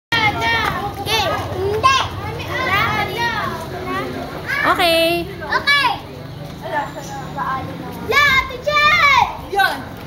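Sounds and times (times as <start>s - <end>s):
children talking and shouting: 0.1s - 10.0s.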